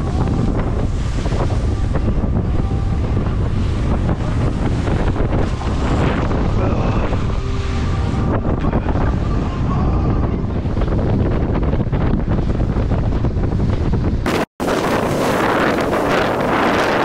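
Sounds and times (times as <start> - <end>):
choppy sea splashing hull: 0.0 - 17.0
wind buffeting microphone: 0.0 - 17.0.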